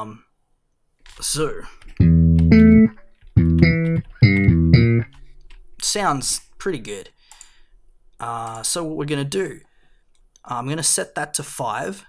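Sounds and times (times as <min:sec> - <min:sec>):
slap bass guitar notes: 0:01.9 - 0:05.1.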